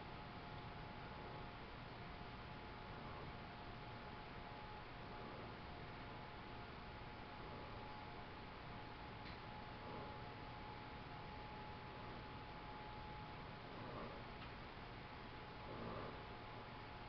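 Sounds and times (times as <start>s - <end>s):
faint high whine: 0.0s - 17.0s.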